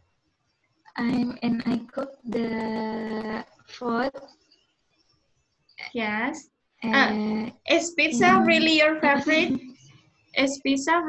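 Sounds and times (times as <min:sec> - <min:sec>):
woman's voice over video call: 0:01.0 - 0:03.4, 0:05.8 - 0:09.7
person speaking: 0:01.0 - 0:04.3, 0:05.8 - 0:09.8.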